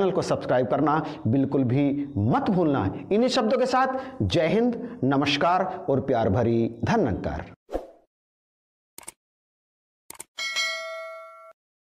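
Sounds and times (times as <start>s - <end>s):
bright bell ding: 10.4s - 11.6s.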